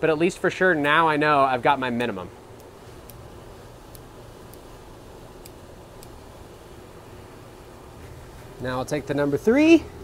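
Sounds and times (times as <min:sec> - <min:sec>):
ventilation fan hum: 0:00.0 - 0:10.0
faint light clicks: 0:05.4 - 0:06.2.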